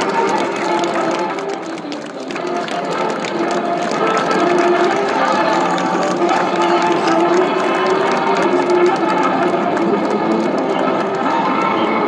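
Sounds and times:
music with steady notes: 0.0 - 12.0
spectators clapping rapidly: 0.0 - 12.0.

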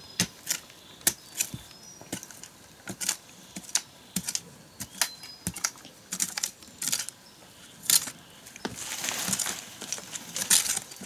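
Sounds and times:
small tool scraping dry earth: 0.1 - 11.0.

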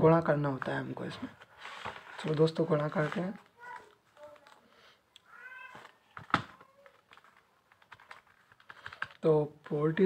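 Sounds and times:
cat meowing: 5.3 - 5.9.

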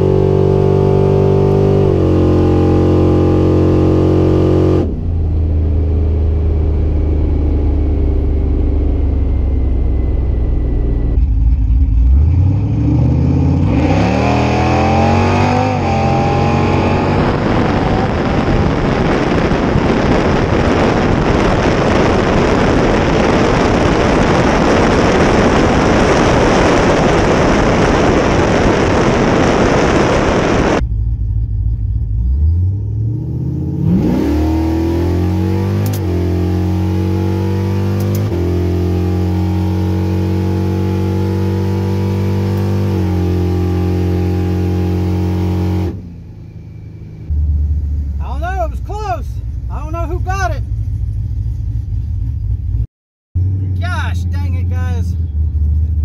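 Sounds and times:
engine at full throttle: 0.0 - 46.4
heavy wind rush: 14.4 - 30.8.

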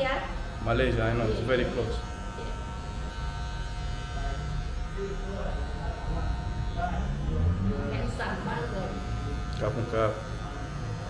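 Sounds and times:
electric hair clippers running: 0.0 - 11.0.

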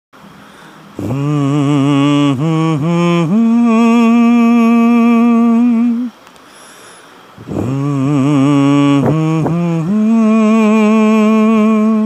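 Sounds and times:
man humming: 1.0 - 6.2, 7.4 - 12.0.

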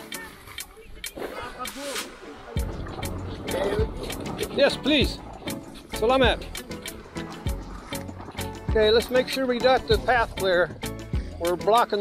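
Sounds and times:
people talking: 0.0 - 2.8, 3.4 - 5.2, 8.7 - 10.7.

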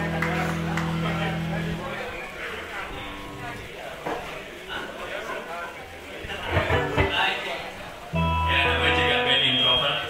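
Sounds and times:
low bass notes: 0.0 - 2.1, 6.5 - 7.2, 8.2 - 9.4
indistinct voices in a hall: 0.0 - 10.0
faint stray instrument notes: 6.2 - 10.0.

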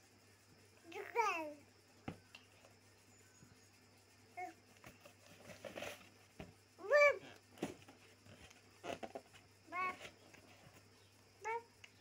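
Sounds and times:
baby high-pitched vocal sound: 6.8 - 7.3.

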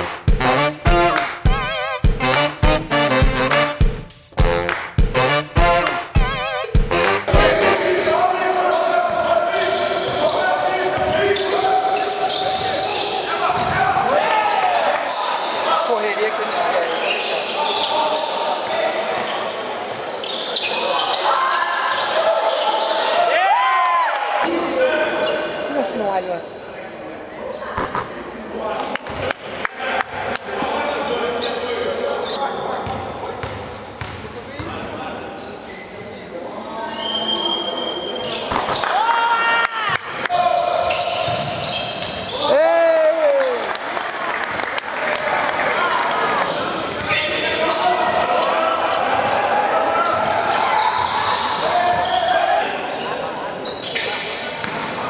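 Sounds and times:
echoing indistinct voices: 5.6 - 19.5.

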